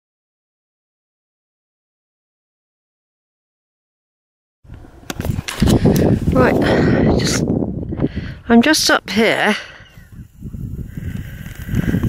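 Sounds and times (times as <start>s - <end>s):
low wind and handling rumble: 4.7s - 12.0s.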